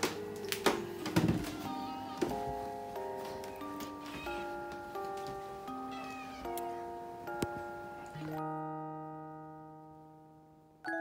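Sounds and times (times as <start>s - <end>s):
background music with chords: 0.0s - 11.0s
kitten mewing: 5.8s - 7.1s.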